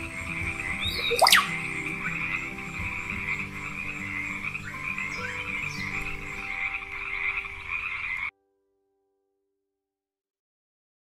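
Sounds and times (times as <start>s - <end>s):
frogs croaking: 0.0s - 8.3s
high-pitched trill: 0.9s - 2.0s.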